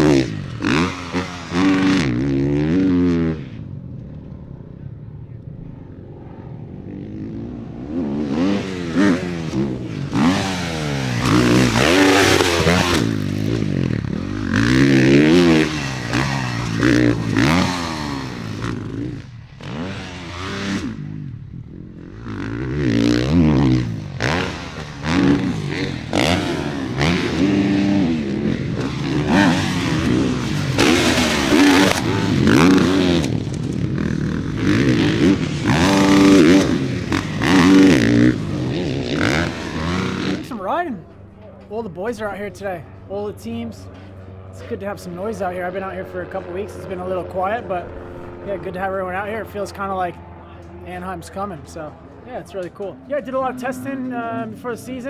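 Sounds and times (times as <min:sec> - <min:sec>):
motocross bikes revving: 0:00.0 - 0:55.0.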